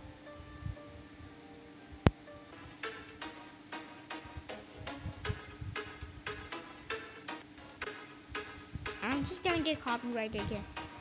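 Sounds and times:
ticking beat: 2.0s - 11.0s.

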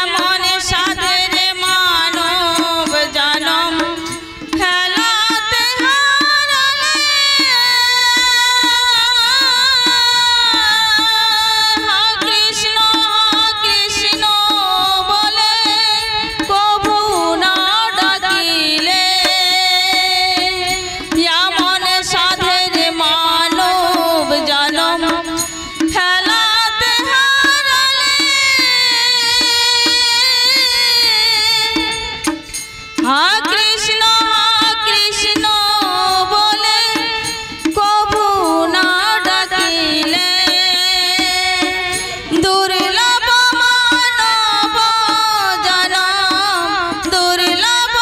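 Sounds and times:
harmonium: 0.0s - 48.0s
percussion beat: 0.0s - 48.0s
woman singing into microphone: 0.0s - 48.0s.

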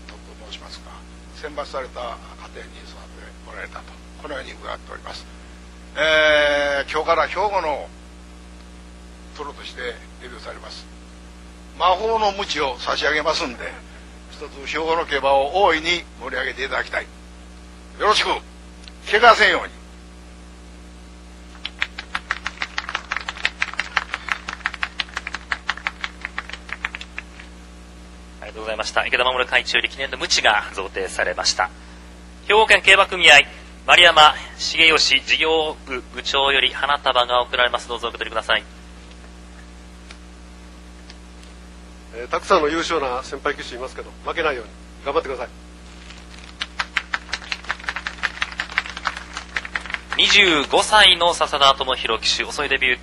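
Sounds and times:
scattered applause: 21.5s - 27.5s, 46.0s - 50.9s
small crowd clapping: 21.5s - 27.6s, 46.0s - 51.1s.

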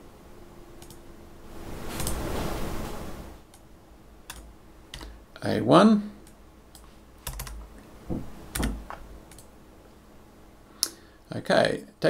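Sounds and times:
computer keyboard keystrokes: 6.2s - 7.6s.

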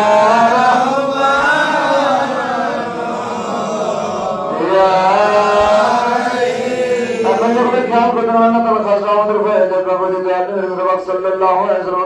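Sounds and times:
man chanting melodically: 0.0s - 12.0s.

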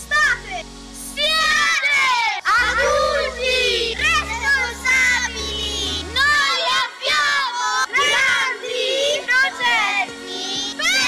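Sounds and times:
children singing together: 1.4s - 11.0s
backing track with bass line: 2.5s - 6.5s.

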